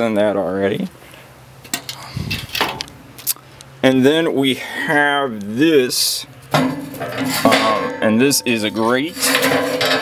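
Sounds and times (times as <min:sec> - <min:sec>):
metal grill rack scraping: 0:06.5 - 0:10.0.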